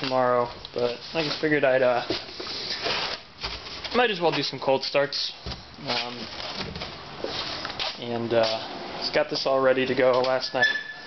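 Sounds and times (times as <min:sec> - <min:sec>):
handling noise scuffing and rustling: 0:00.0 - 0:09.2, 0:09.8 - 0:11.0.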